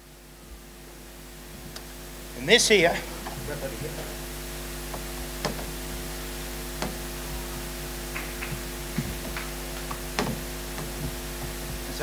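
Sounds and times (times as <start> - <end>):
electrical hum: 0.0 - 12.0
knocks and taps on easel: 5.4 - 5.7, 8.2 - 11.6.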